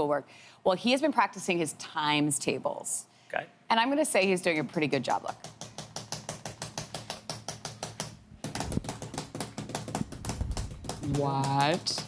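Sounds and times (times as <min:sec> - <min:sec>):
rapid typing on laptop keyboard: 0:05.3 - 0:12.0.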